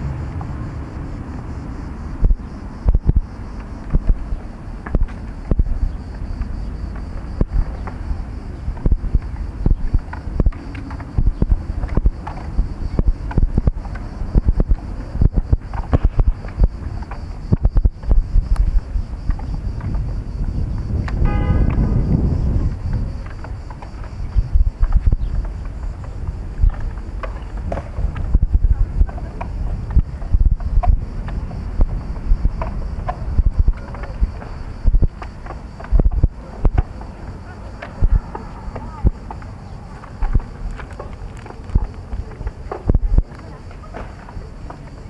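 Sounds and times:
low rumble: 0:00.0 - 0:43.4
bumps and thumps: 0:00.0 - 0:45.0
wind buffeting microphone: 0:00.0 - 0:45.0.

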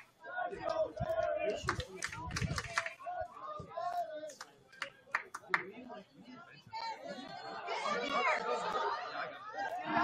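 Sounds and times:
crowd chattering and calling out: 0:00.0 - 0:10.0.

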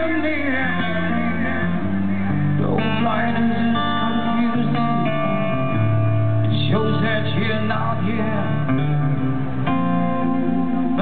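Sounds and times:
guitar chords strummed: 0:00.0 - 0:11.0
held bass notes: 0:00.0 - 0:11.0.

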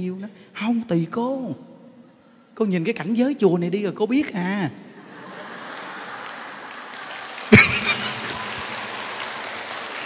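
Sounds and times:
women laughing and clapping: 0:05.0 - 0:10.0.

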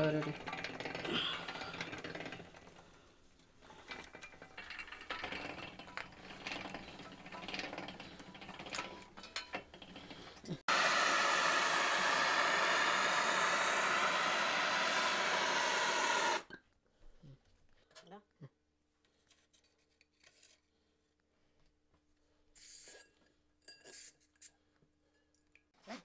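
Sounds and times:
rolling mill gears clicking and rattling: 0:00.0 - 0:10.6
gas torch flame hissing: 0:10.7 - 0:16.4.

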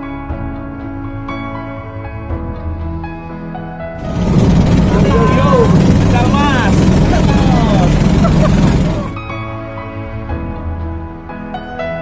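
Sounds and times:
boat engine running loudly: 0:04.0 - 0:09.3
people's voices: 0:04.7 - 0:09.2.

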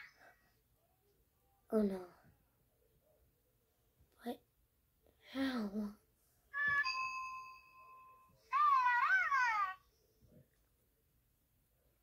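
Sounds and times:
electronic chime from plush toy: 0:06.6 - 0:08.4.

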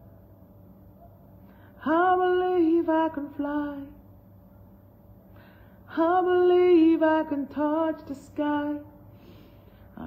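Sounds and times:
woman singing unaccompanied: 0:01.8 - 0:04.1, 0:05.9 - 0:09.1.

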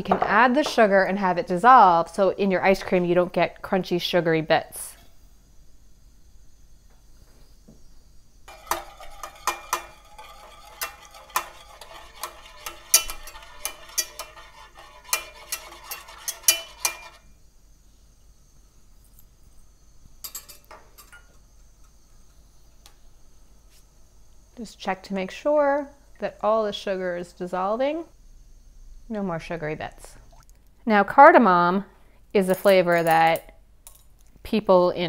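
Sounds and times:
wire whisk tapping and scraping pan: 0:08.5 - 0:17.3.

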